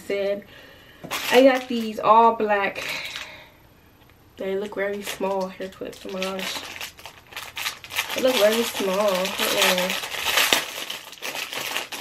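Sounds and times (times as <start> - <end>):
plastic bag crinkling: 1.0 - 2.0, 2.8 - 3.4, 4.4 - 12.0.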